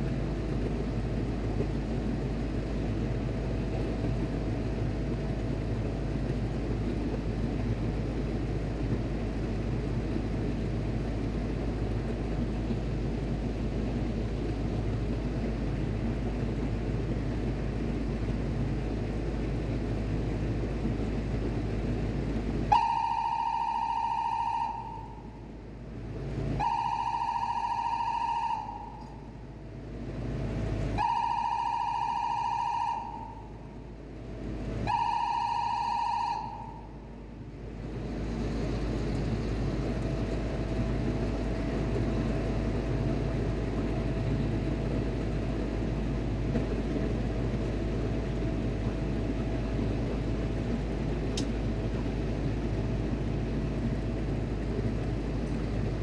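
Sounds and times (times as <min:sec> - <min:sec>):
low machinery rumble: 0:00.0 - 0:56.0.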